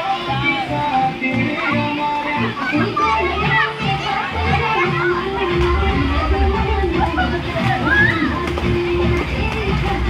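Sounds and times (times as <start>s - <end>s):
children shouting and playing: 0.0s - 10.0s
music with heavy bass beat: 5.0s - 10.0s.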